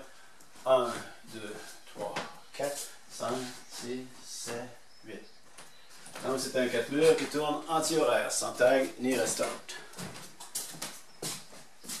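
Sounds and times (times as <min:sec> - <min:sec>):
footsteps on wooden floor: 0:08.8 - 0:12.0.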